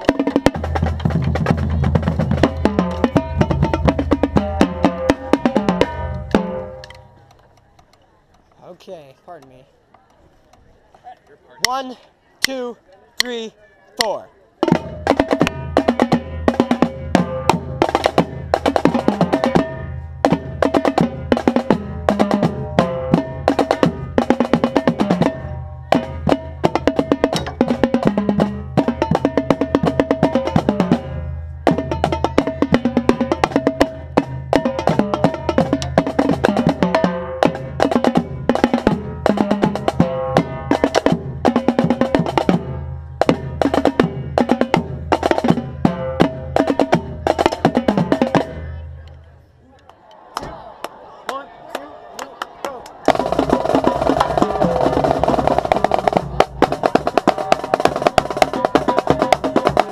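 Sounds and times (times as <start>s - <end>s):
marching drumline playing: 0.0s - 7.0s, 14.0s - 49.0s, 52.9s - 59.9s.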